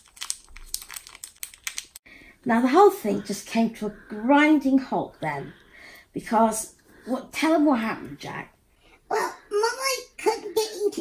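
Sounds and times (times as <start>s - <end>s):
plastic bag crinkling: 0.0s - 2.0s.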